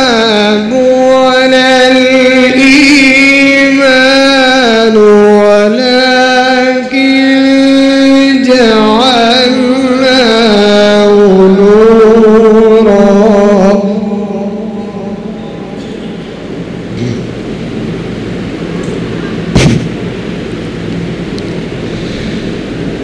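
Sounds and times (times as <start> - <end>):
man reciting melodically through microphone: 0.0 - 15.8
sharp thump: 19.5 - 20.0.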